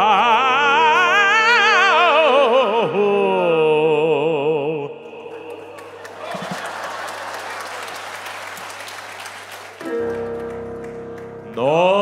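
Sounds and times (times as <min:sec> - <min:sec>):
audience applauding: 0:05.2 - 0:12.0.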